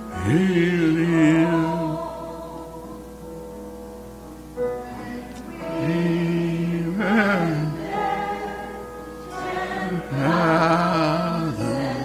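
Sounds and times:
choir singing long notes: 0.0s - 3.2s, 4.6s - 12.0s.

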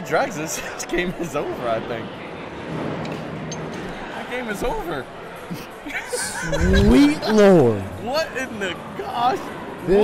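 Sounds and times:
steady crowd murmur: 0.0s - 10.0s.

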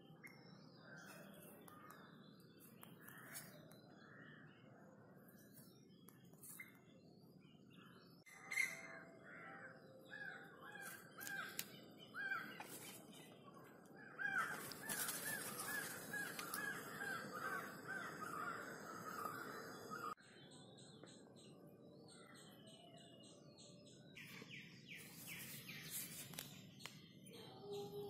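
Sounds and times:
bird calling: 10.1s - 13.1s, 14.0s - 20.2s.

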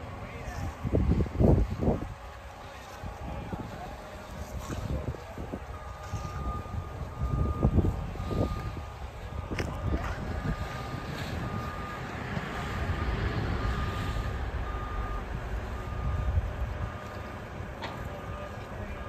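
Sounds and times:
diesel machinery running: 0.0s - 19.0s
reversing alarm beeping: 0.8s - 19.0s.

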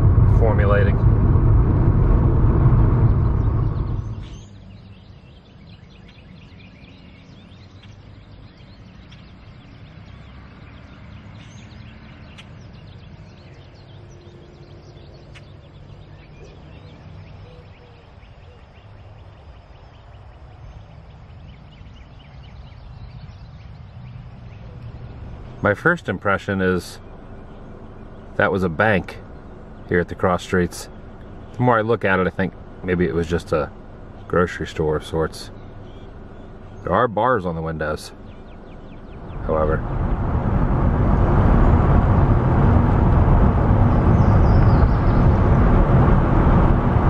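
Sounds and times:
car engine and tyre rumble: 0.0s - 47.0s
low outdoor ambience: 0.0s - 47.0s.

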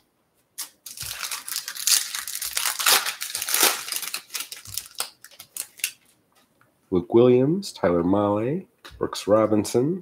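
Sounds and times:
foil card pack crinkling: 0.6s - 6.1s.

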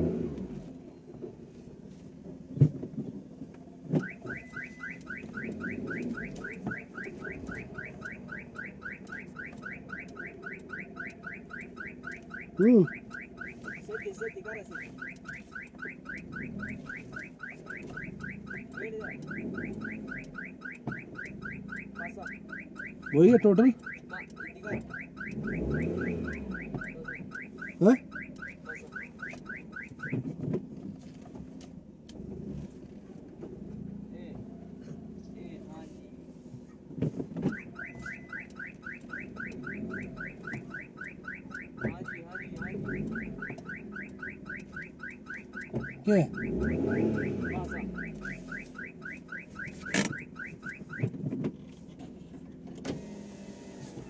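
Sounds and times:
low engine hum: 0.0s - 54.0s
electronic warning beeps: 4.0s - 30.2s, 37.5s - 51.1s.

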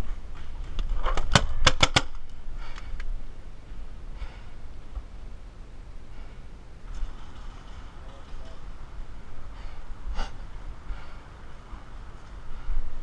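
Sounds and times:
paintball gun cracks: 0.8s - 3.1s.

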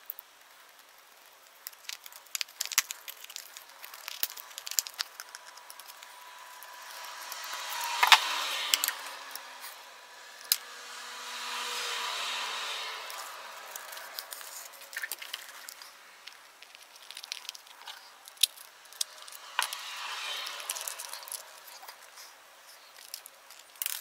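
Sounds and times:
metal parts clicking and clinking: 1.6s - 6.1s, 13.8s - 19.8s, 20.6s - 22.0s, 22.8s - 24.0s
rushing noise: 2.9s - 23.2s.

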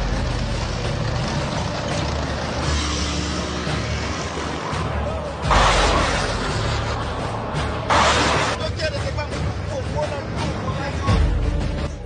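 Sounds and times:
tank engine rumbling: 0.0s - 12.0s
track and road noise: 0.0s - 12.0s.

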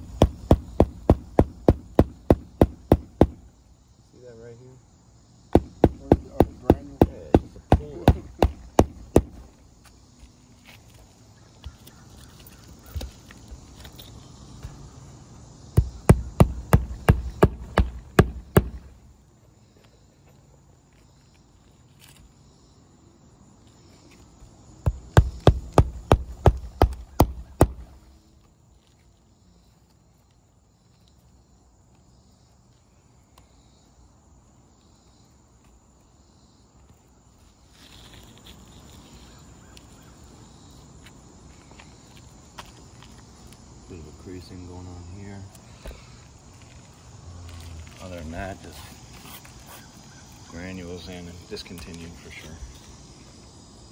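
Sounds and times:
hammer striking roofing nails: 0.0s - 3.5s, 5.5s - 9.4s, 15.8s - 19.0s, 24.9s - 27.9s.

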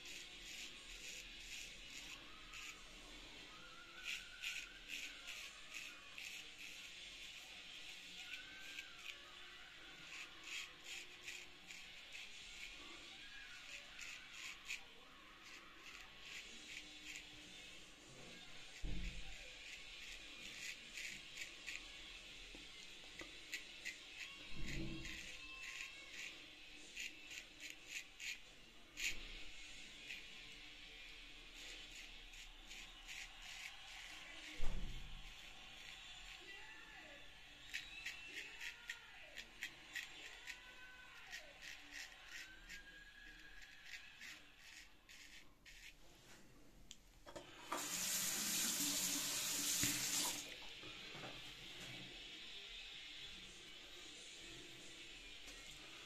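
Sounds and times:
razor cutting stubble: 0.0s - 46.0s, 47.7s - 50.4s.

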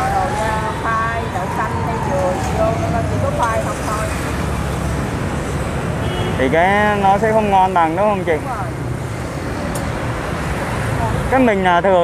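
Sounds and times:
motorbikes passing: 0.0s - 12.0s
road traffic: 0.0s - 12.0s.

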